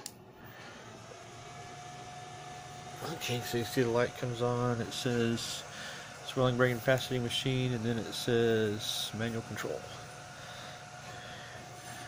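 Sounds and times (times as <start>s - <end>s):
background hum and hiss: 0.0s - 12.0s
thin constant whine: 0.0s - 12.0s.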